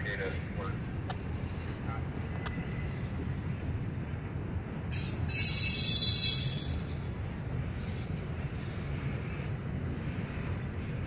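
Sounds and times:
freight cars rumbling: 0.0s - 11.0s
steel wheel squeal: 4.9s - 7.0s.

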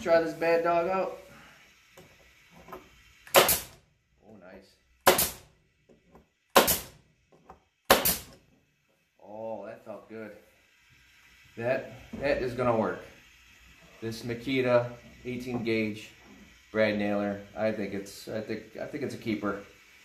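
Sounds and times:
nail gun firing into wood: 3.3s - 3.8s, 5.0s - 5.5s, 6.5s - 7.0s, 7.9s - 8.4s.

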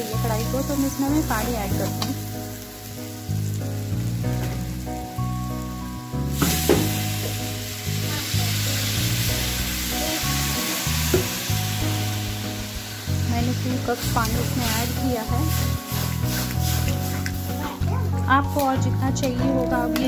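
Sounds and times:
water hissing in hot pan: 0.0s - 18.2s
background music: 0.0s - 20.0s
vegetables sizzling: 0.0s - 20.0s
metal spatula scraping pan: 14.4s - 17.4s.

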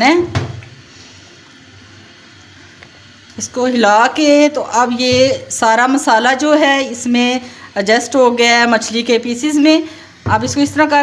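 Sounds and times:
curry simmering in a pan: 0.7s - 3.5s.

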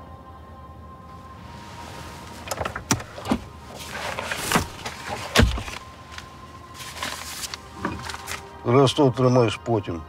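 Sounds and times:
car door swinging open: 2.2s - 5.8s
car door clicks and knocks: 2.4s - 3.5s, 4.3s - 5.8s.

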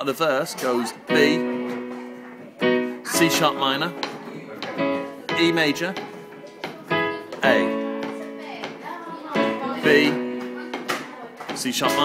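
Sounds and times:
piano chords: 0.9s - 12.0s.

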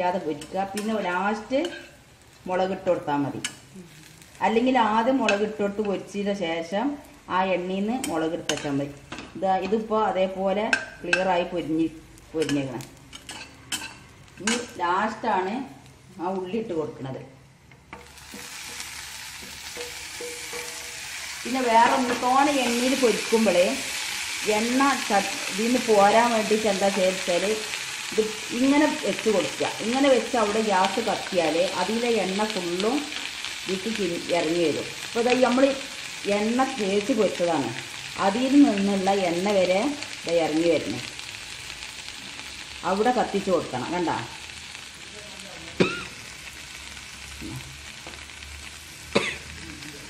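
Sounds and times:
vegetables sizzling in hot oil: 0.0s - 50.0s
spatula stirring in pan: 17.9s - 24.4s.

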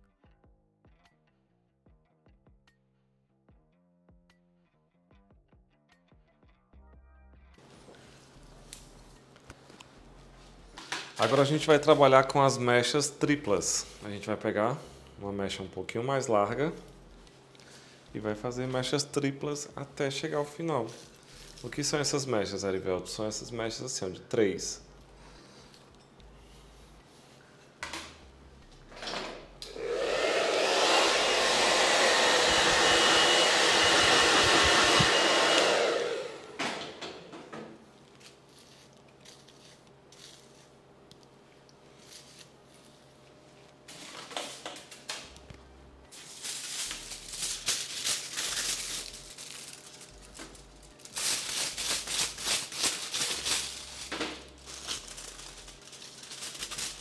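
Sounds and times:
hair dryer running: 29.6s - 37.0s
foil crinkling: 46.1s - 57.0s.

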